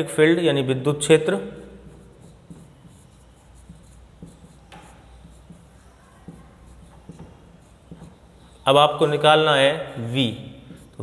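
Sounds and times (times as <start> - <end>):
marker writing on whiteboard: 1.3 - 11.0.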